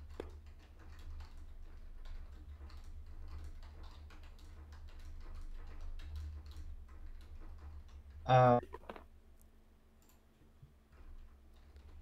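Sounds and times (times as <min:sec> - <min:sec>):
trading cards clicking and tapping: 0:08.6 - 0:09.1.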